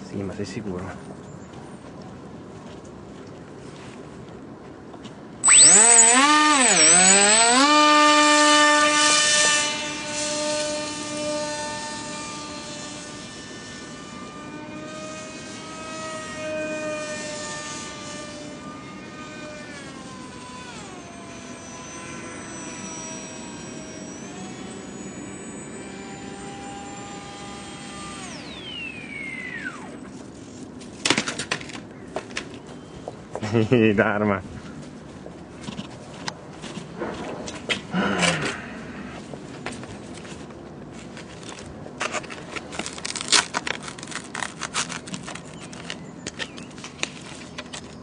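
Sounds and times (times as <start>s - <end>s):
model plane motor whine: 5.4s - 30.6s, 41.4s - 48.0s.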